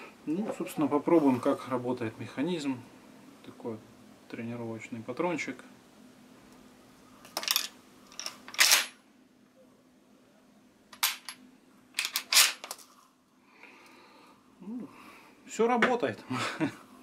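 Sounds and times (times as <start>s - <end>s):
round sliding into magazine: 12.0s - 12.8s.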